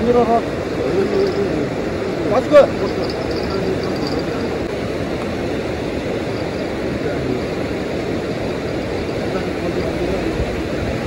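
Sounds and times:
fast river rushing: 0.0s - 11.0s.

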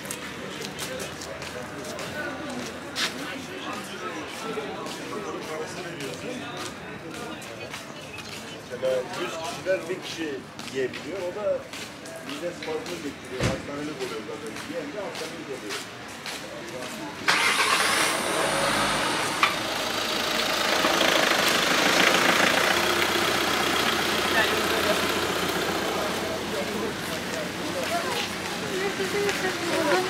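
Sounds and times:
people's voices: 0.0s - 30.0s
car engine starting and running: 17.3s - 27.7s.

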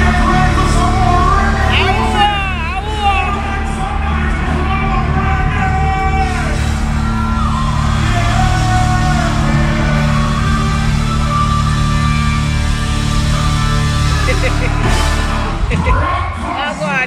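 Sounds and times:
heavy steady bass: 0.0s - 17.0s
loud music over sound system: 0.0s - 17.0s.

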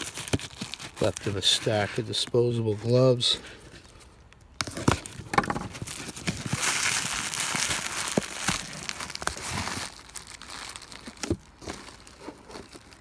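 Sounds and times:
bubble wrap crinkling: 0.0s - 13.0s.

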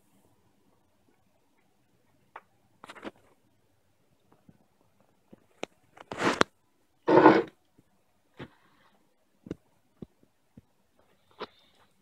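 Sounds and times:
short rustling scrapes: 7.1s - 7.5s.

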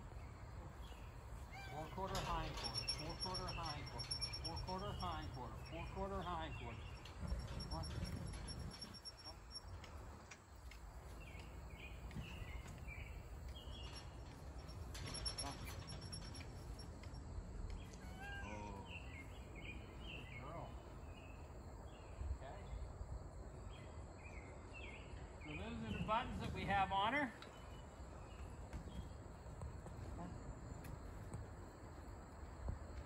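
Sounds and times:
birds chirping: 0.0s - 22.9s.

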